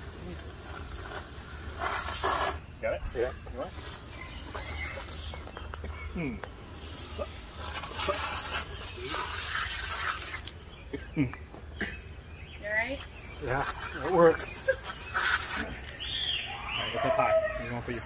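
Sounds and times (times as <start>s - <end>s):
hose spraying and splashing water: 0.0s - 10.8s, 13.0s - 16.2s, 17.8s - 18.0s.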